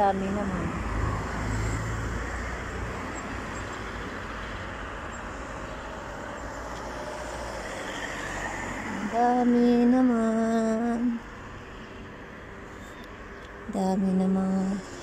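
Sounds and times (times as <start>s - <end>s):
cars passing on road: 0.0s - 15.0s.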